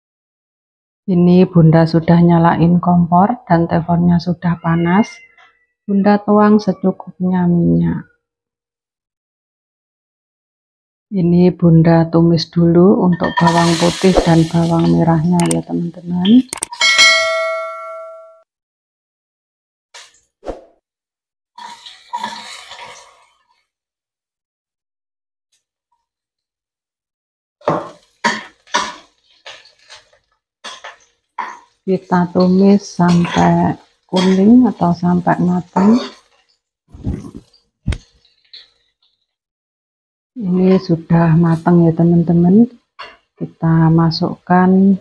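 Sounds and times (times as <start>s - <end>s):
shallots clattering into metal pan: 13.2s - 15.6s, 27.6s - 31.8s, 32.4s - 36.6s
bright bell-like ding: 16.8s - 18.4s.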